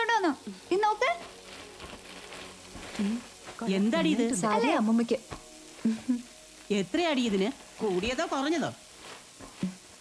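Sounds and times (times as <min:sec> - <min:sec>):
food sizzling while frying: 0:00.0 - 0:10.0.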